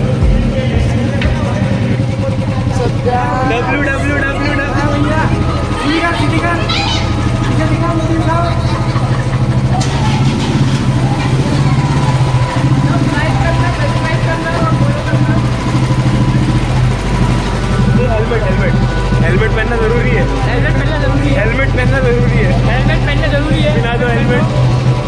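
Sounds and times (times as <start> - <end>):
motorcycle engine idling: 0.0 - 25.0
people's voices: 0.0 - 25.0.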